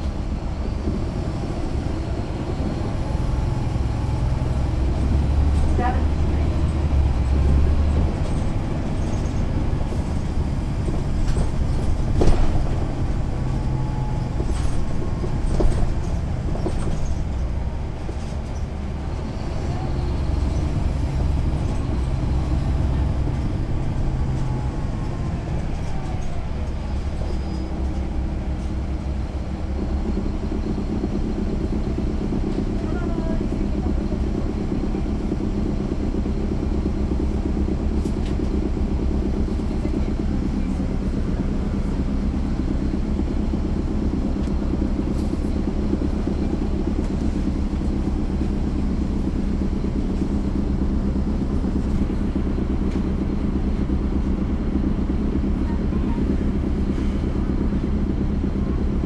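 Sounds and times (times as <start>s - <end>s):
bus diesel engine droning: 0.0s - 59.0s.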